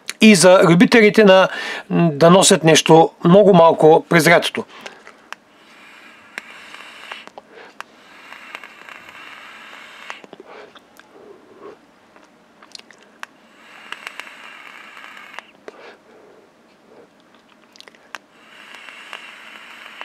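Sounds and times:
airy vape draw hisses: 5.5 - 11.8, 13.2 - 16.5, 18.1 - 20.0
mouth clicks and lip smacks: 6.3 - 11.2, 12.1 - 14.5, 17.1 - 20.0.

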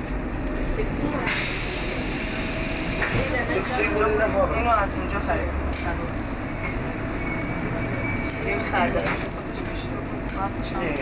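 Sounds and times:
bus engine rumbling: 0.0 - 11.0
air brakes hissing: 0.5 - 3.9.

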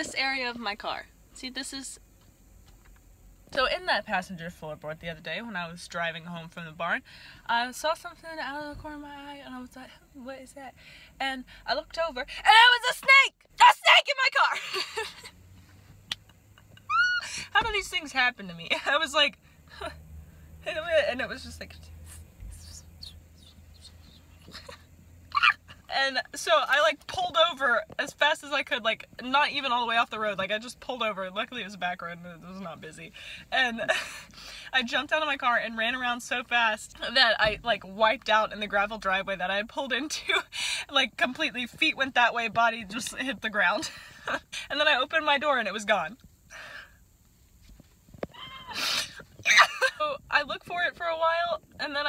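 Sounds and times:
car interior hum: 0.0 - 52.0
woman laughing: 14.4 - 15.3, 24.4 - 25.9, 49.4 - 50.2.

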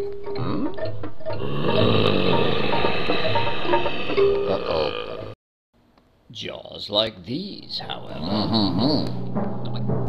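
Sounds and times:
background music: 0.0 - 5.4, 7.4 - 10.0.

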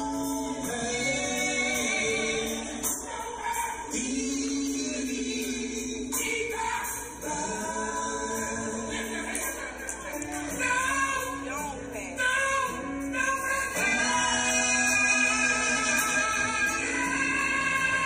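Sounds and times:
gospel group singing: 0.0 - 18.0.

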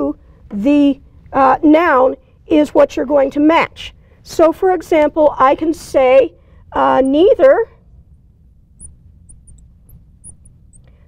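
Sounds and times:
low steady hum: 0.0 - 11.0
marker squeaking on glass board: 8.8 - 11.0.

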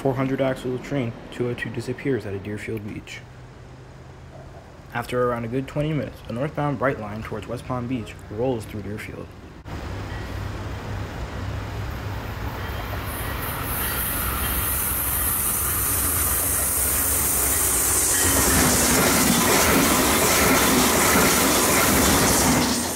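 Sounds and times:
train rumbling past on rails: 0.0 - 2.4, 9.6 - 22.9.

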